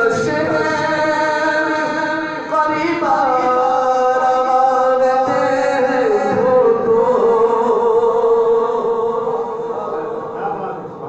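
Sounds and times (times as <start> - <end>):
man singing long note: 0.0 - 10.9.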